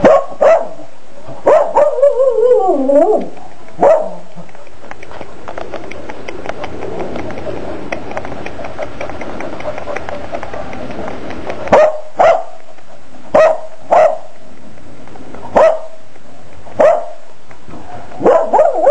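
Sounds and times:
puppy barking: 0:00.0 - 0:00.8, 0:01.4 - 0:03.2, 0:03.8 - 0:04.8, 0:09.5 - 0:10.9, 0:11.6 - 0:12.6, 0:13.3 - 0:14.3, 0:15.5 - 0:16.0, 0:16.8 - 0:17.2, 0:18.2 - 0:18.9
background hiss: 0:00.0 - 0:18.9.

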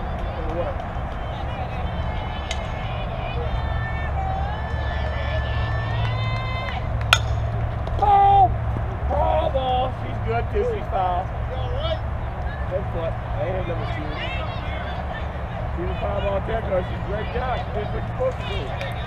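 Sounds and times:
spectators' voices: 0:00.0 - 0:19.0
bat striking ball: 0:02.4 - 0:03.0, 0:06.9 - 0:08.0.

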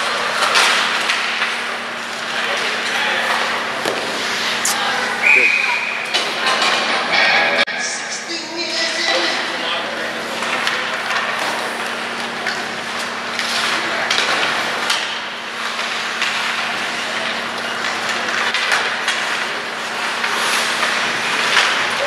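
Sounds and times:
hockey sticks and puck clacking: 0:00.0 - 0:04.5, 0:10.2 - 0:22.0.

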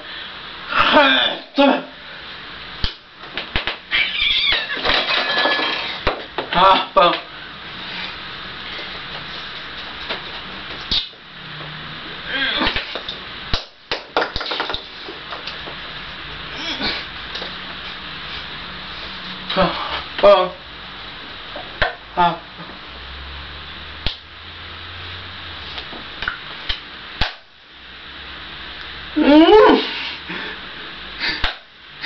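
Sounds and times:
low background hum: 0:00.0 - 0:32.0
sharp hand clap: 0:02.8 - 0:03.8, 0:12.7 - 0:14.8, 0:24.0 - 0:24.3, 0:26.2 - 0:27.5, 0:31.4 - 0:31.7.

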